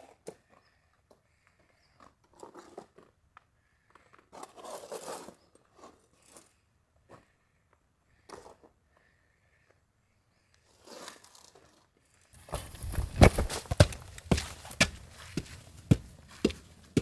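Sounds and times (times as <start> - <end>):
footsteps on stone steps: 12.4 - 17.0.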